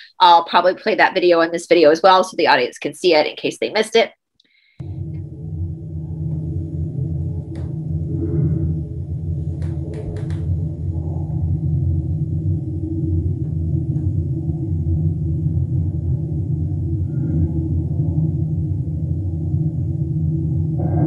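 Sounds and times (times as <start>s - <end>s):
muffled low rumble: 4.8s - 21.0s.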